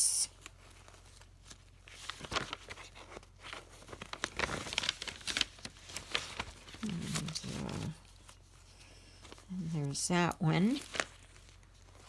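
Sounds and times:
magazine pages rustling: 0.3 - 12.0.

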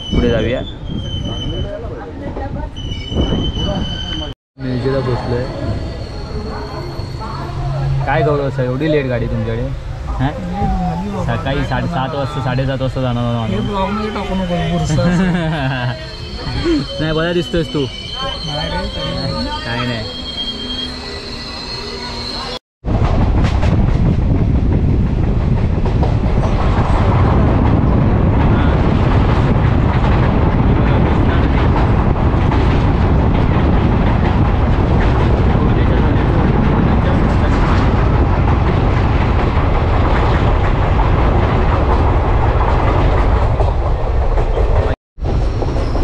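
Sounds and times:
train wheels rumbling on rails: 22.0 - 46.0.

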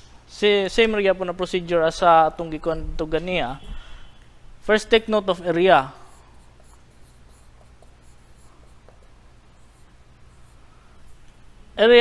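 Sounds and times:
marker writing on whiteboard: 4.9 - 11.2.

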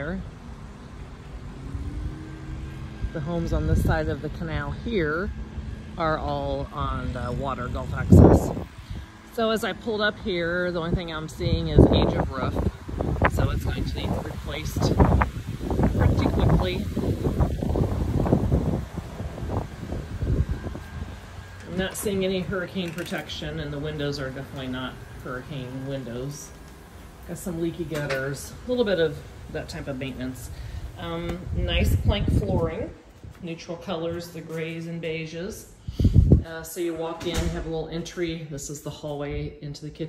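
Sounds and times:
vehicle engine humming: 0.0 - 36.4
distant traffic rumble: 0.0 - 40.0
wind buffeting microphone: 0.3 - 9.2, 10.0 - 34.4, 35.8 - 36.6.

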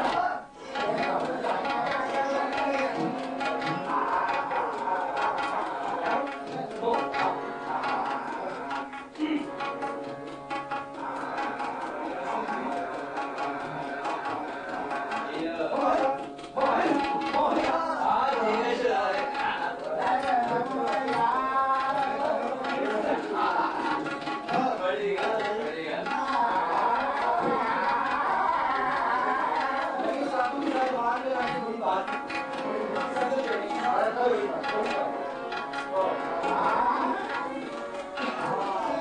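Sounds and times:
man singing: 0.0 - 39.0
tabla strokes: 0.0 - 39.0.

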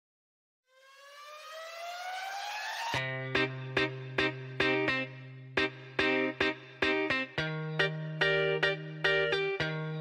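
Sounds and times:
synthesized rising tone: 0.7 - 3.1.

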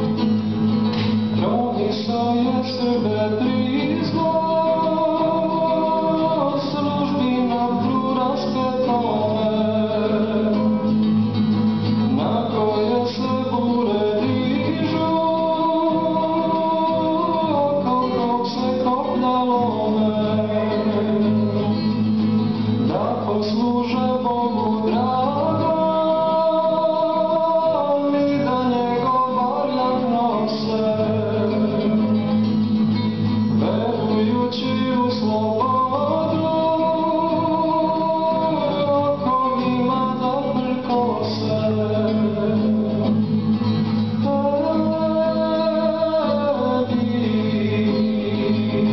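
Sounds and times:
classical guitar: 0.0 - 48.9
man singing: 1.0 - 48.9.

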